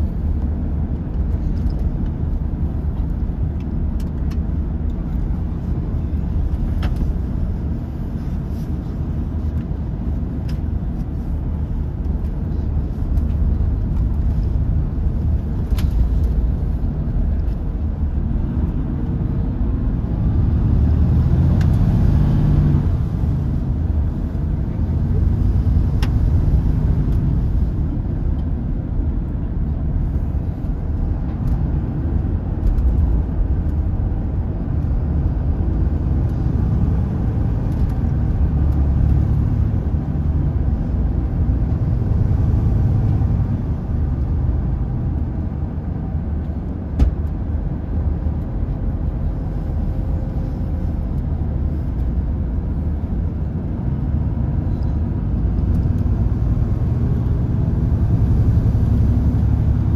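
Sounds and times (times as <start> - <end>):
coach engine and road rumble: 0.0 - 59.9
light ticks in cabin: 3.0 - 5.1.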